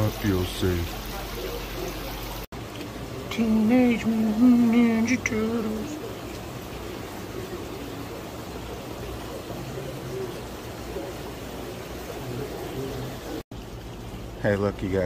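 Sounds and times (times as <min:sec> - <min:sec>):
aquarium water trickling: 0:00.0 - 0:15.0.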